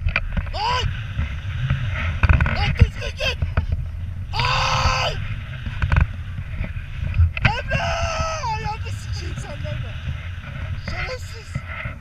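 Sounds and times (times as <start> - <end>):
wind buffeting microphone: 0.0 - 12.0
person yelling: 0.6 - 0.9, 4.4 - 5.2, 7.5 - 8.9.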